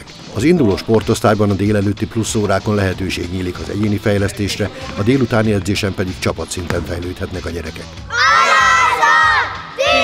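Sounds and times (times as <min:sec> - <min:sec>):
boys shouting a cheer: 0:08.1 - 0:10.0.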